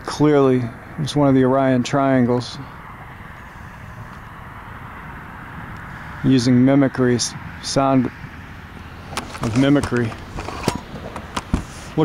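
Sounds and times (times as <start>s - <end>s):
distant aircraft engine: 0.0s - 12.0s.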